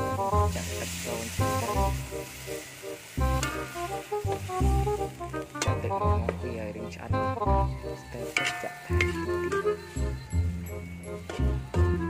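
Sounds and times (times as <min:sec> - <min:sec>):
background music with steady beat: 0:00.0 - 0:12.0
liquid sizzling in hot wok: 0:00.0 - 0:12.0.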